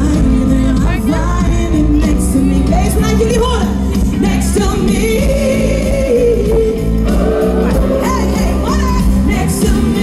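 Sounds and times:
live band playing: 0.0s - 10.0s
woman singing through a pa: 0.0s - 10.0s.

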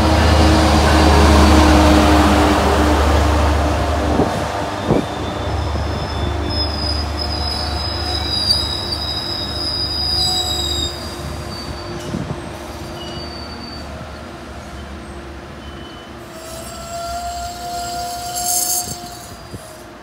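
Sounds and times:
train coaches rumbling on rails: 0.0s - 20.0s
high-pitched wheel squeal: 4.8s - 12.2s, 13.0s - 14.0s, 15.6s - 19.9s.

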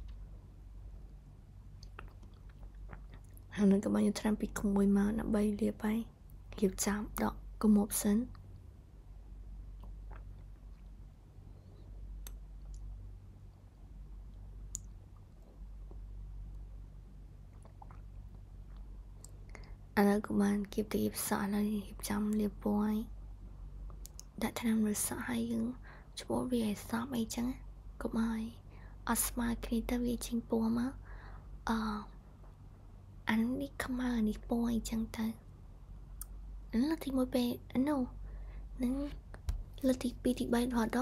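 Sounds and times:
woman speaking softly: 3.5s - 8.4s, 20.0s - 23.1s, 24.2s - 31.0s, 31.6s - 32.2s, 33.2s - 35.4s, 36.7s - 38.2s, 38.8s - 41.0s.

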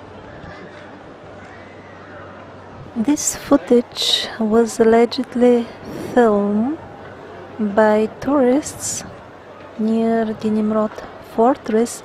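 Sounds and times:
faint distant voices: 0.0s - 12.0s
outdoor background noise: 0.0s - 12.0s.

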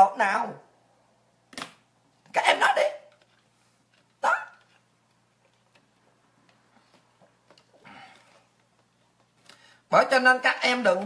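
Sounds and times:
dog barking: 4.2s - 4.7s.

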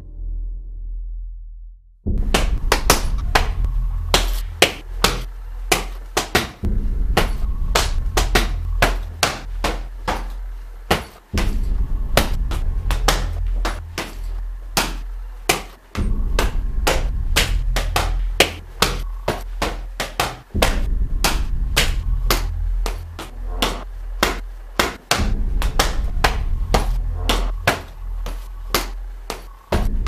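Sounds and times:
low rumble: 0.0s - 30.0s
sharp slaps and knocks: 2.1s - 30.0s.

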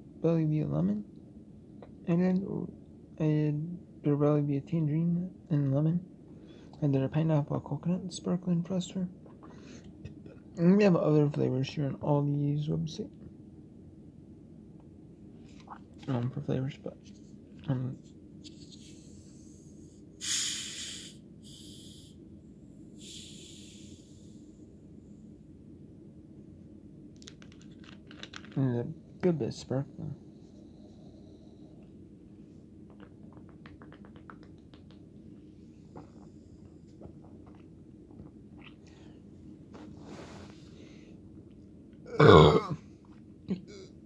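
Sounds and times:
gas hissing from bottle opening: 20.2s - 22.1s, 23.0s - 24.0s
loud burp: 42.1s - 42.8s.

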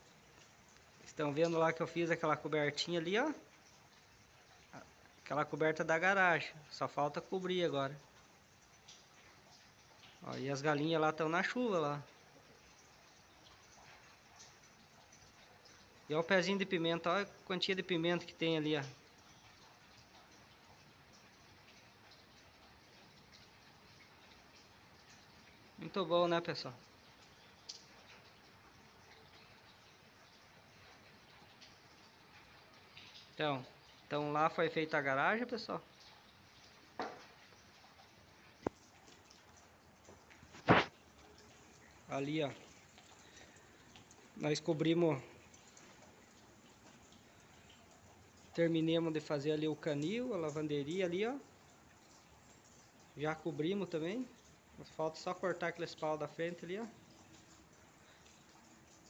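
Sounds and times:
faint drips: 0.0s - 59.0s
light rain hissing: 0.0s - 59.0s.

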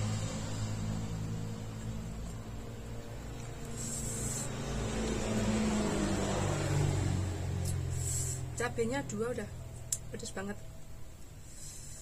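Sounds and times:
vehicle engine drone passing by: 0.0s - 11.5s.

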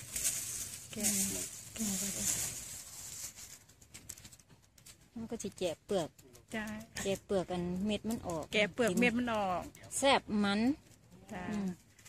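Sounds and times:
woman speaking: 0.9s - 2.5s, 5.2s - 11.8s.

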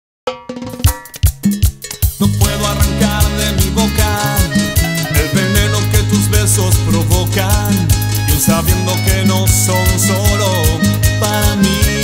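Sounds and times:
latin dance band: 0.3s - 12.0s.

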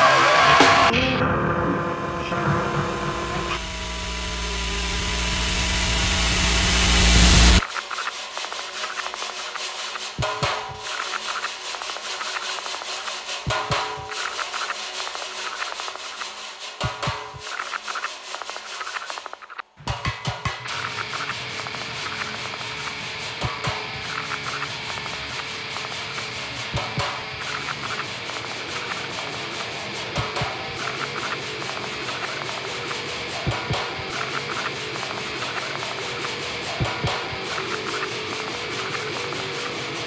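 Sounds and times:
harsh scraping noise texture: 0.0s - 40.0s.

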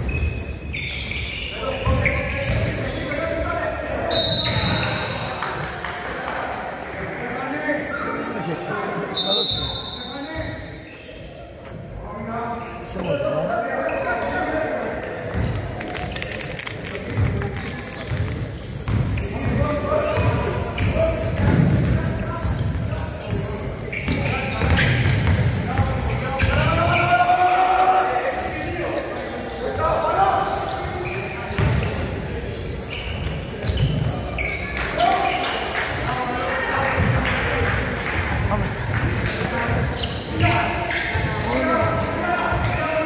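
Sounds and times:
shouts echoing in gym: 0.0s - 15.3s, 19.1s - 43.0s
basketball bouncing: 1.8s - 2.8s, 17.1s - 20.4s, 31.6s - 31.9s.

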